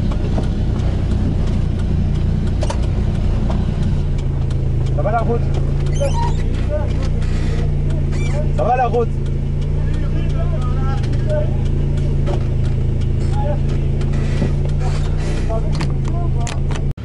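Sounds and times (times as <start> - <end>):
vehicle engine idling: 0.0 - 17.0.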